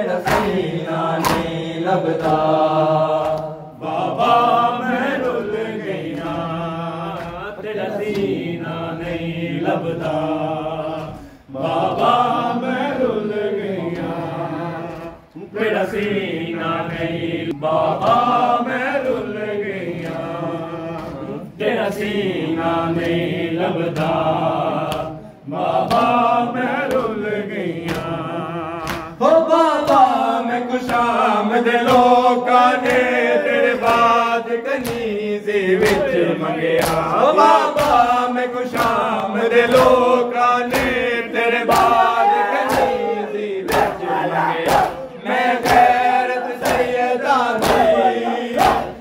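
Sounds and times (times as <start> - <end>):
men chanting a lament: 0.0 - 49.0
hands slapping chests: 0.2 - 12.2, 22.0 - 29.2, 29.8 - 49.0.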